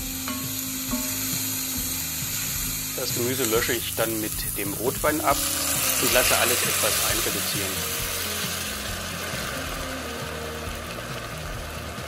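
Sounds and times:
wine sizzling in a hot pot: 0.0 - 12.0.

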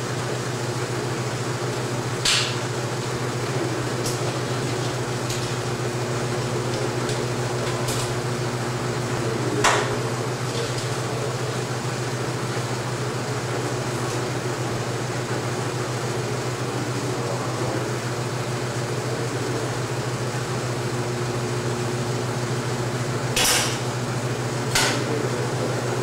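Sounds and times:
film projector hum and whir: 0.0 - 26.0.

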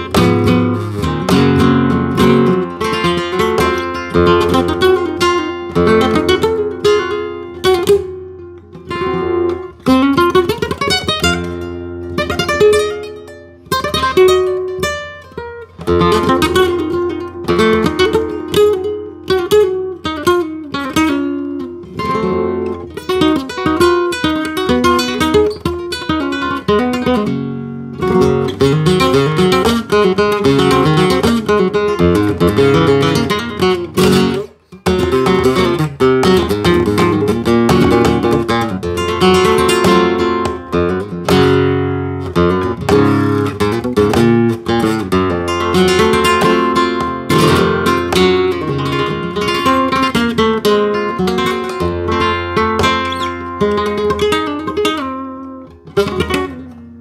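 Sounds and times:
flamenco guitar playing: 0.0 - 57.0.

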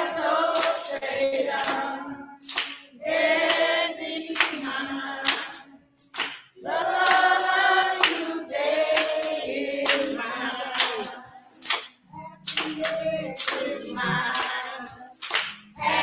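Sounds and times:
women's choir singing in harmony: 0.0 - 5.9, 6.6 - 16.0
steady percussion beat: 0.0 - 16.0.

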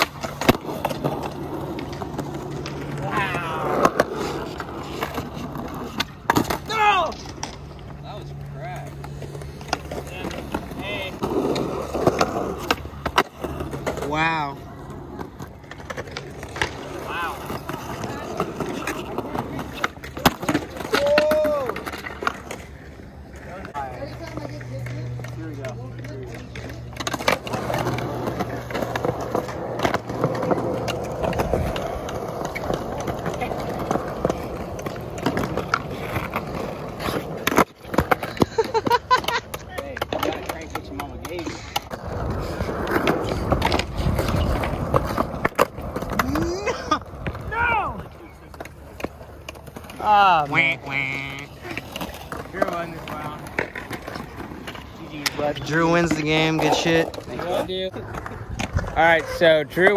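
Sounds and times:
skateboard clacks: 0.0 - 59.9
skateboards rolling on concrete: 0.0 - 59.9
voices and laughter: 38.1 - 40.5, 46.2 - 48.6.

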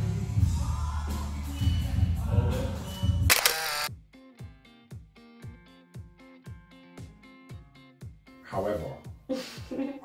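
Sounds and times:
camera shutter click: 3.3 - 3.9
sparse plucked tune with soft beat: 3.9 - 8.4
guitar backing music: 3.9 - 9.8.

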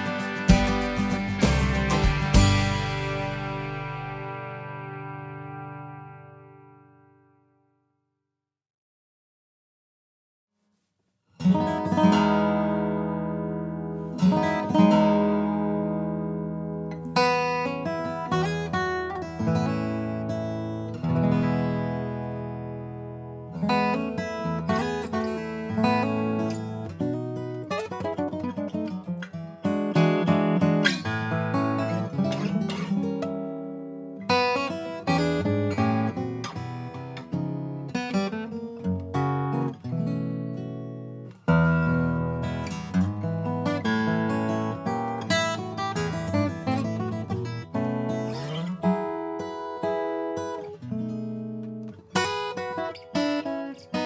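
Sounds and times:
fingerstyle acoustic guitar: 0.0 - 7.6, 10.6 - 54.0.

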